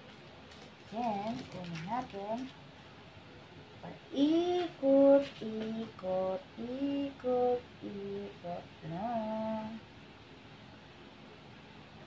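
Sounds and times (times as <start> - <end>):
woman humming slow tune: 6.0 - 9.8.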